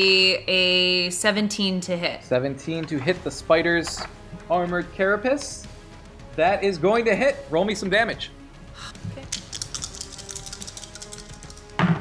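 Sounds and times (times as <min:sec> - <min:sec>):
background music with drum beat: 0:02.7 - 0:12.0.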